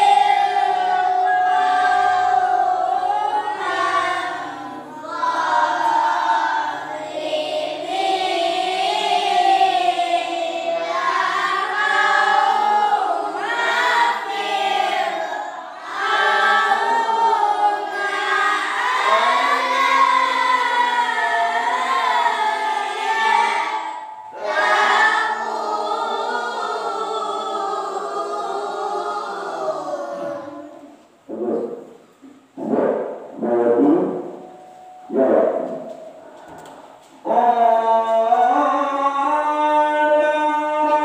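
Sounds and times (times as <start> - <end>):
group reciting in unison: 0.0 - 41.0.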